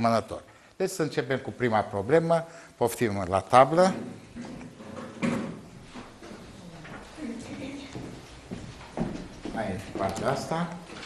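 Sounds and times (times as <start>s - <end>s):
person moving from a desk: 3.8s - 11.0s.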